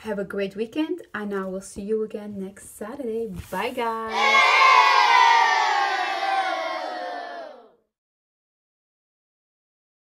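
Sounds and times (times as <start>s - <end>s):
group of voices cheering: 4.1s - 7.8s.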